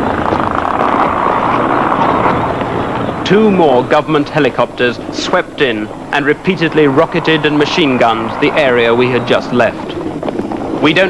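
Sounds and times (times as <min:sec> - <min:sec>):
helicopter overhead: 0:00.0 - 0:11.0.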